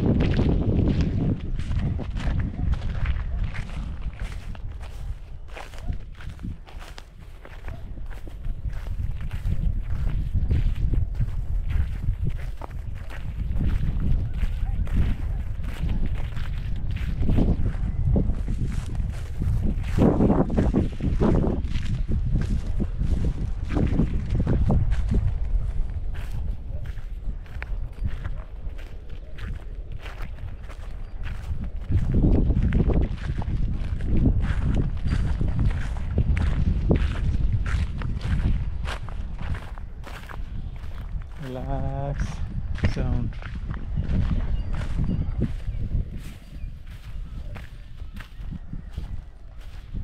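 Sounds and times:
footsteps crunching through straw: 0:00.1 - 0:50.0.

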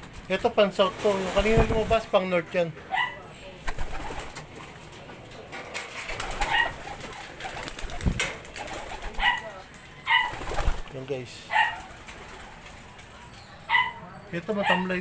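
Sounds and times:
pigeons calling: 0:02.9 - 0:04.8, 0:05.7 - 0:15.0.

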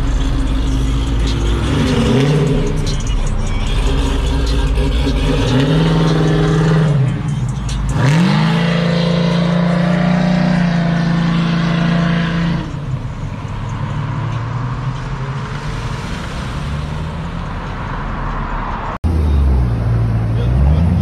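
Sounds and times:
car engine accelerating hard: 0:00.0 - 0:21.0.

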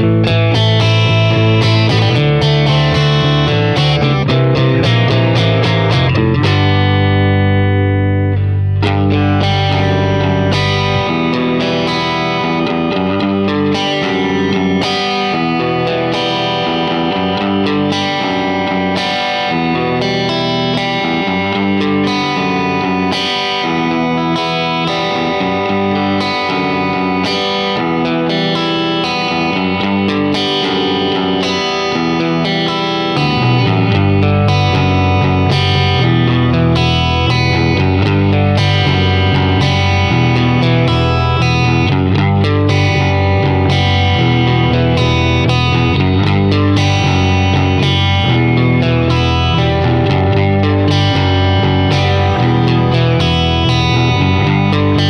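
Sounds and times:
bass: 0:00.0 - 0:55.0
electric guitar riff: 0:00.0 - 0:55.0.

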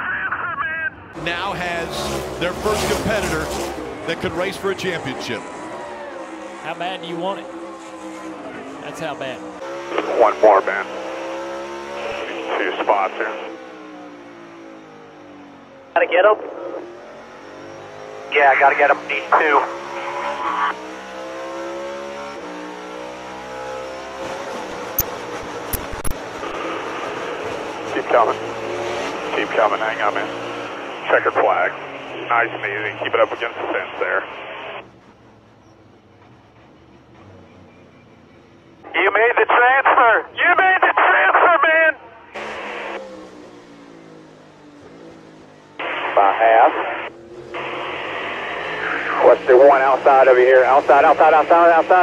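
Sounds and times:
person speaking over radio: 0:00.0 - 0:03.5, 0:04.1 - 0:05.4, 0:10.0 - 0:10.9, 0:12.0 - 0:13.5, 0:16.0 - 0:16.8, 0:18.3 - 0:20.7, 0:27.9 - 0:28.4, 0:29.3 - 0:30.3, 0:31.0 - 0:34.5, 0:38.9 - 0:42.0, 0:45.8 - 0:47.1, 0:48.8 - 0:52.0
race car engine at full throttle: 0:01.1 - 0:52.0
radio static hiss: 0:18.3 - 0:20.7, 0:30.9 - 0:34.8, 0:38.9 - 0:41.9, 0:45.8 - 0:52.0.

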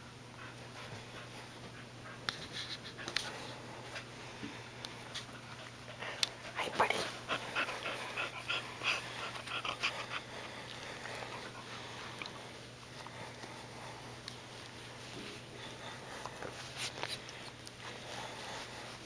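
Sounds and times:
dog panting: 0:00.3 - 0:04.2, 0:04.9 - 0:19.0.

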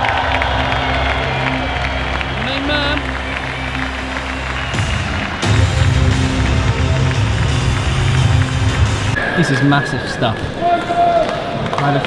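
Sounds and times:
loud music with heavy bass: 0:04.4 - 0:09.2.

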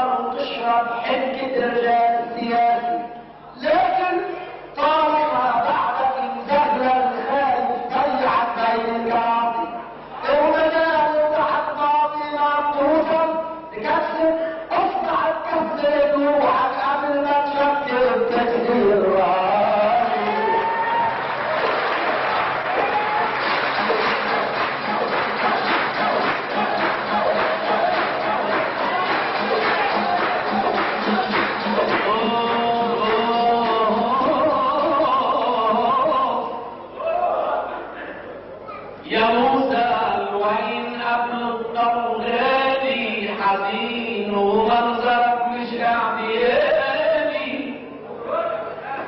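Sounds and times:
audience hand-clapping: 0:20.0 - 0:34.6
group of voices chanting: 0:24.3 - 0:32.1.

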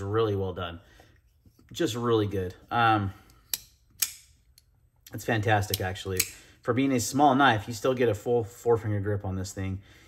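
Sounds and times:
folding knife clicking: 0:03.5 - 0:04.7, 0:05.7 - 0:06.4.

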